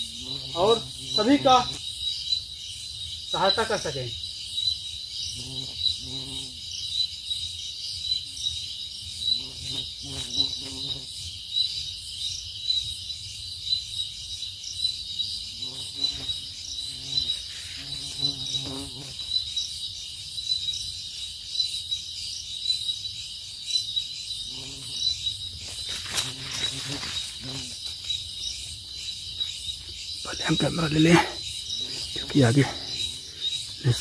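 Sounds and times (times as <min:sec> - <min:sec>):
crickets chirping: 0:00.0 - 0:34.0.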